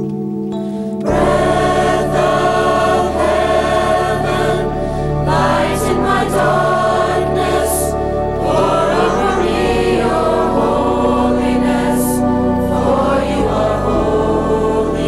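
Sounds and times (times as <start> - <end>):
instrumental accompaniment: 0.0 - 15.0
youth choir singing: 1.0 - 15.0
deep bass: 1.1 - 15.0.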